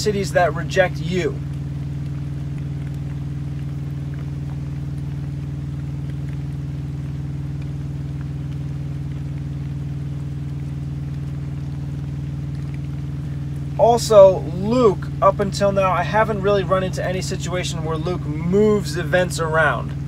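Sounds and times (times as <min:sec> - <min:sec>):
truck engine idling: 0:00.0 - 0:20.0.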